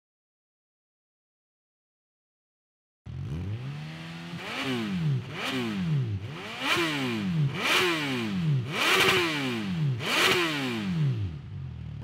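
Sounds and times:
motorcycle engine idling: 0:11.2 - 0:12.0.

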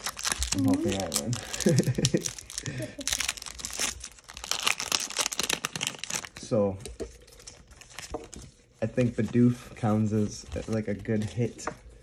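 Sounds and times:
foil wrapper crinkling: 0:00.0 - 0:06.5
man speaking: 0:00.6 - 0:01.4.

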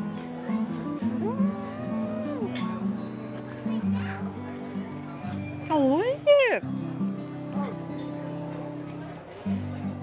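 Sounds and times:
woman humming mmm of delight: 0:01.2 - 0:02.6.

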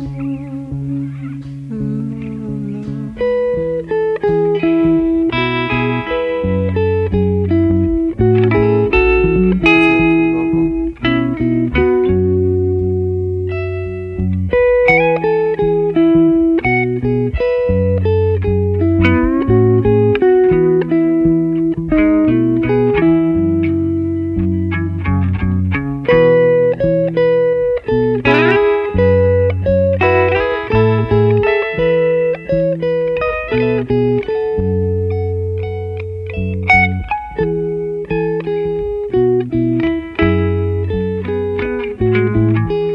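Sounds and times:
bass guitar line: 0:00.0 - 0:42.9
electric guitar solo: 0:00.0 - 0:42.9.

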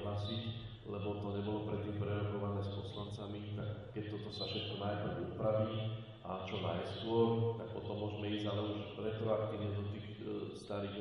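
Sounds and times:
man speaking in monotone: 0:00.0 - 0:11.0.

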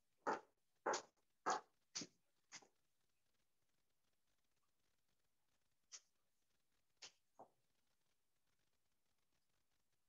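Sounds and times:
footsteps on hard floor: 0:00.2 - 0:02.8.

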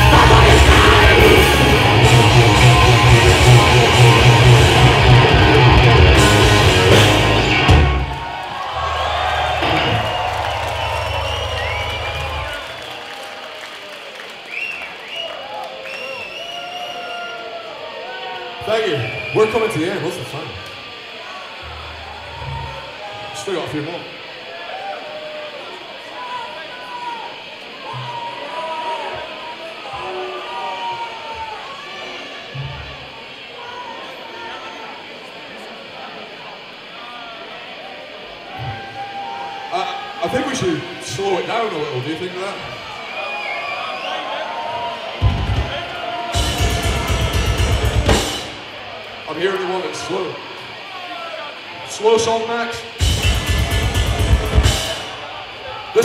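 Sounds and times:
metal band playing: 0:00.0 - 0:12.6, 0:45.2 - 0:49.4, 0:52.9 - 0:56.0
crowd cheering and shouting: 0:00.0 - 0:56.0.

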